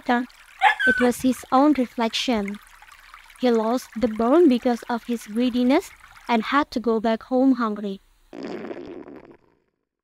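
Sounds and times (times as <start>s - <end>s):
cartoon stomach rumble: 8.3s - 9.9s.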